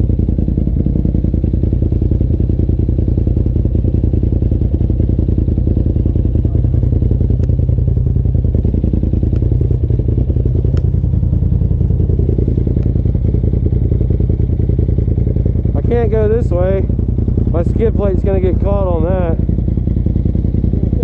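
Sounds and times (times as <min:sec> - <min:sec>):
engine idling: 0:00.0 - 0:21.0.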